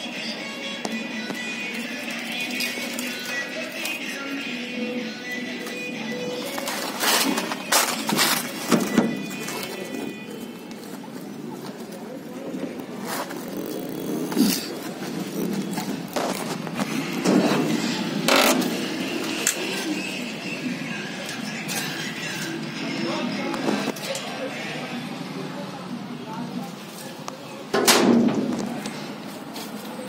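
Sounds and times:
ambient noise: 0.0 - 30.0
indistinct background voices: 0.0 - 30.0.

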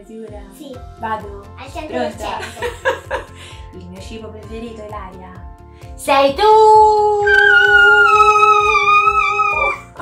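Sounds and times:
background music with beat: 0.0 - 10.0
high-pitched vocal cry: 7.3 - 10.0.

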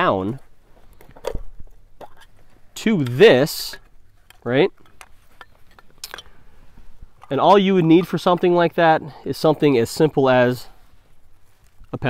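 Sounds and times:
light clicks and clinks: 0.8 - 6.4.

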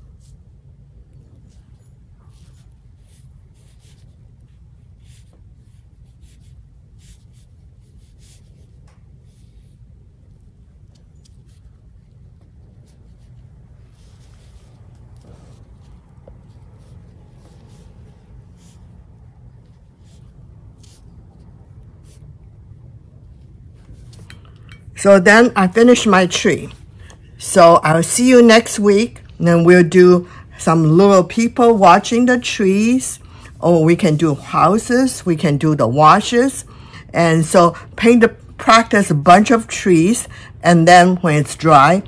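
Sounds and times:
low room hum: 0.0 - 42.0
brush swishing on paper: 1.4 - 22.5, 34.0 - 35.0.

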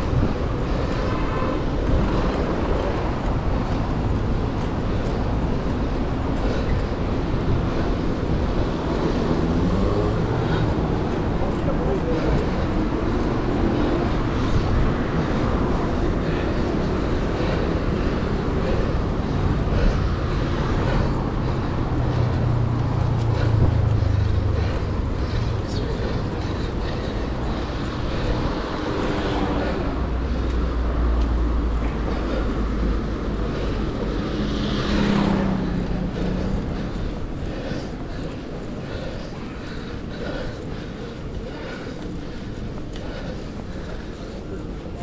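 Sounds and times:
car traffic: 0.0 - 45.0
deep rumble of passing vehicles: 0.0 - 45.0
wind and road noise: 0.0 - 45.0.

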